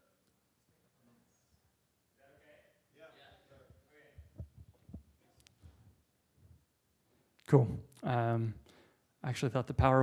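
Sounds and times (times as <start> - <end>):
faint low thumps: 3.6 - 6.6.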